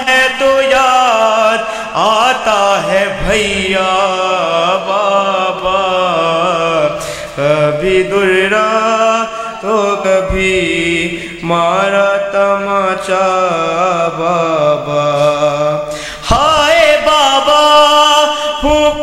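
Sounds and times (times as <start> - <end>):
man chanting a lament: 0.0 - 19.0.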